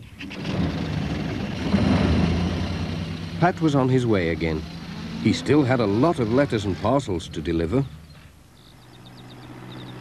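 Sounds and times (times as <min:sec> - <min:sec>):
cartoon van engine running: 0:00.0 - 0:10.0.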